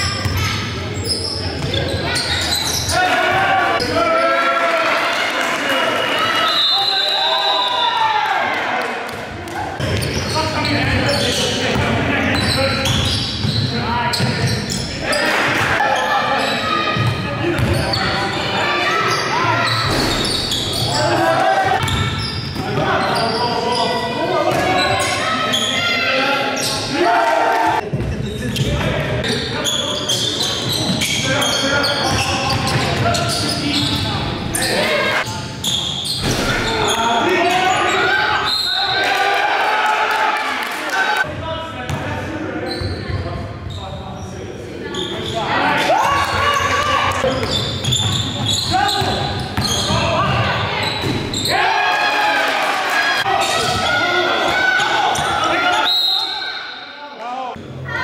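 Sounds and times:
indistinct shouting and chatter: 0:00.0 - 0:58.0
basketball bouncing on court: 0:17.0 - 0:17.8.

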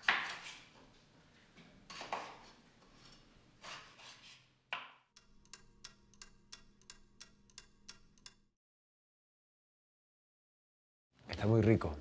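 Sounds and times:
pendulum clock ticking: 0:05.2 - 0:08.5.

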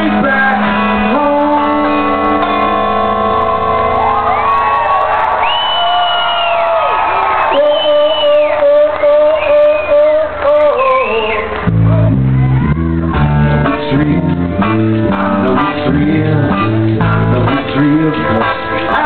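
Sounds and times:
acoustic guitar chords: 0:00.0 - 0:04.6, 0:11.7 - 0:19.0
strummed guitar rhythm: 0:00.0 - 0:05.3, 0:11.6 - 0:19.0.

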